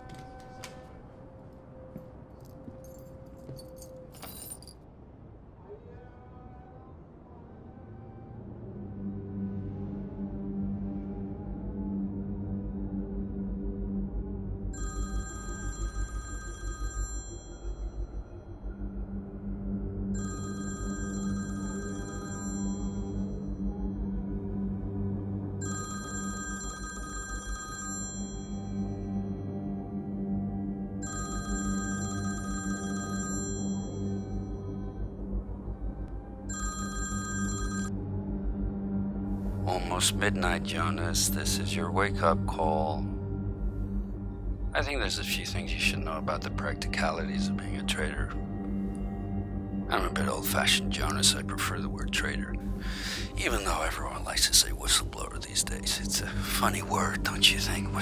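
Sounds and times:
light metallic jingling: 2.4s - 4.8s
smartphone ringing: 14.8s - 17.8s, 20.2s - 23.1s, 25.6s - 28.6s, 31.0s - 34.2s, 36.5s - 37.9s.

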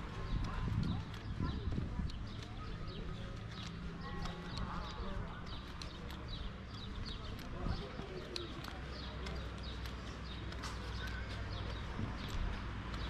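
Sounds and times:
footsteps on stone paving: 0.0s - 13.0s
low hum of street noise: 0.0s - 13.0s.

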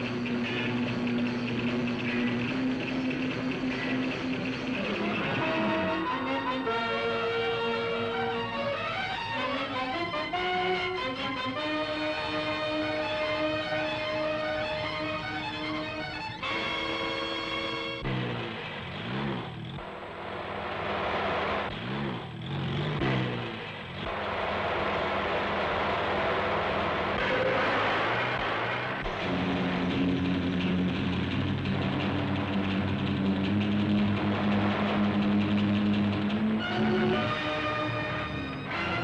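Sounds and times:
background music: 0.0s - 18.8s, 24.1s - 39.0s
speeding car engine: 0.0s - 39.0s
steady drone: 0.0s - 39.0s
rushing noise: 19.8s - 22.2s, 22.9s - 39.0s.

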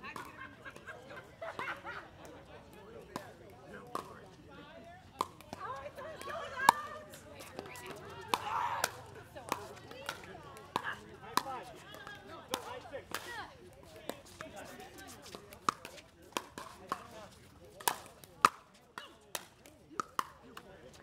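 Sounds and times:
faint voices: 0.0s - 21.0s
paddles hitting plastic ball: 3.1s - 4.1s, 15.2s - 20.7s.

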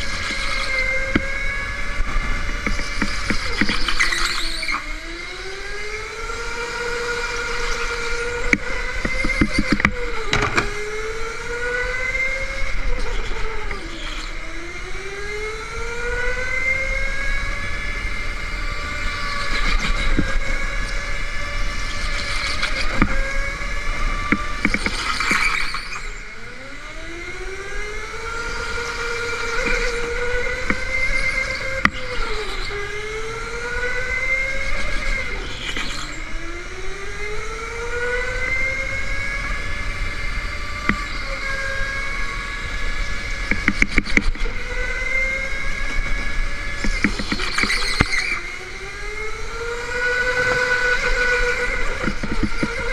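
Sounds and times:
go-kart motor whining: 0.0s - 52.9s.

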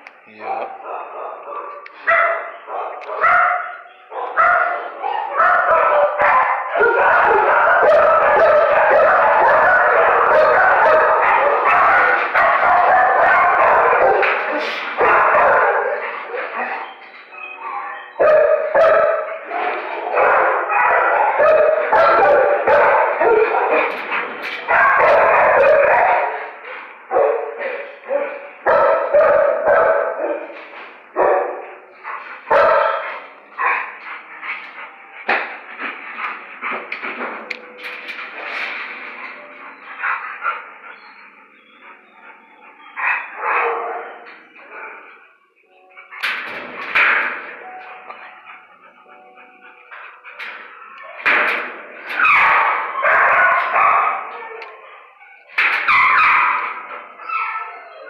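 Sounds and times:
many dogs barking and yipping: 0.3s - 58.0s.

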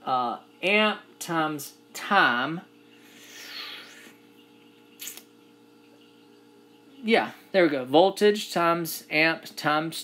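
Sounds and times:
faint electrical hum: 0.0s - 10.0s
breath-like rush of air: 3.0s - 4.2s.

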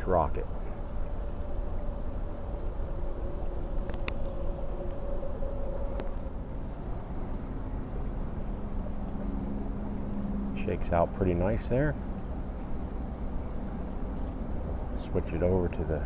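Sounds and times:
distant engine droning: 0.0s - 16.0s.

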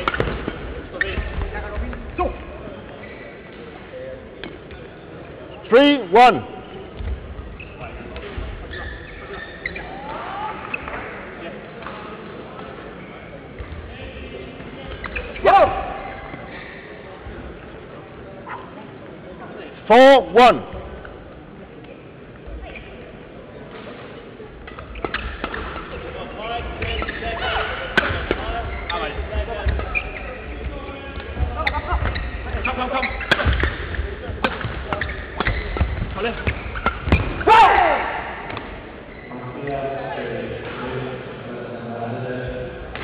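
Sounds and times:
racket striking shuttlecock: 0.0s - 0.6s, 27.9s - 28.4s, 33.2s - 37.4s
player shouting: 37.4s - 38.2s.

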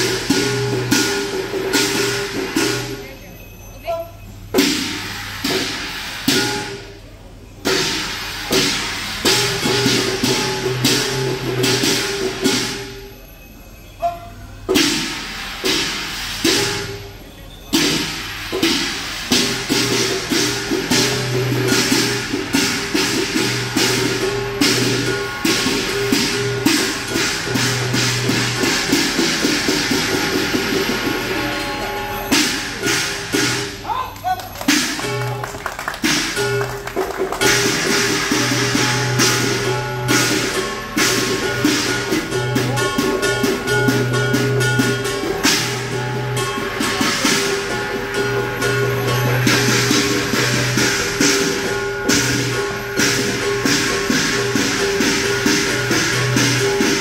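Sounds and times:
drum gong and cymbal ensemble: 0.0s - 57.0s.

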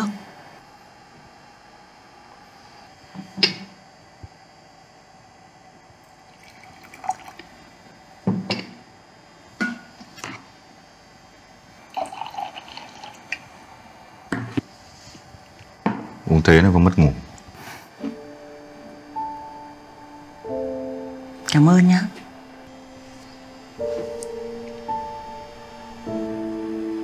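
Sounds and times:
tea pouring into cup: 6.2s - 7.6s, 11.8s - 13.7s
cups and teapot clinking: 11.9s - 13.4s.

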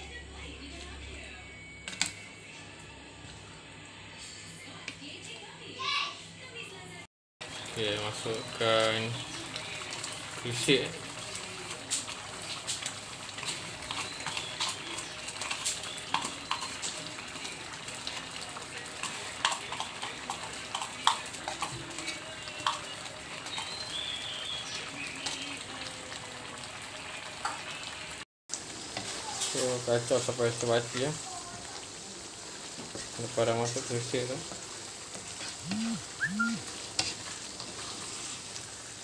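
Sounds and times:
gravy simmering and sizzling in a wok: 7.4s - 39.0s.

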